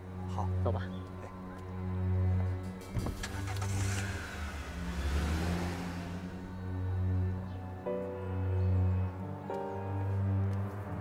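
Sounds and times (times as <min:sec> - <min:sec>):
soft background music: 0:00.0 - 0:11.0
car driving past: 0:01.6 - 0:09.2.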